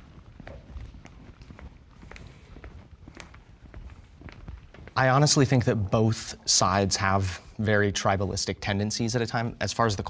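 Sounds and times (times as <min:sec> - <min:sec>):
footsteps of people walking: 0:00.0 - 0:07.6.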